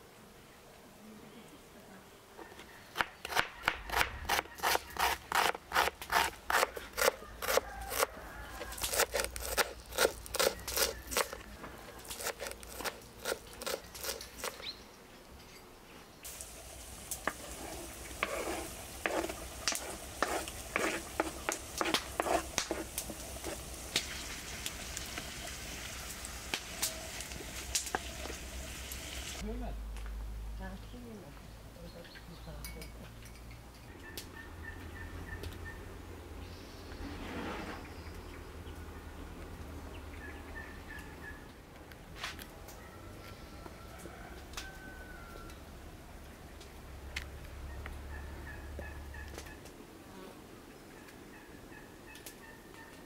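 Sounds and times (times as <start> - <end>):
knife chopping on wooden board: 3.0 - 8.1, 18.2 - 23.6
mushrooms sizzling in a pan: 16.3 - 29.4.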